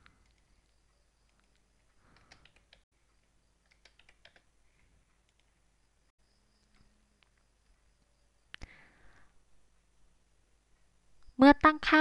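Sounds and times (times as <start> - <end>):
faint keyboard keystrokes: 0.0 - 2.8, 3.6 - 5.6.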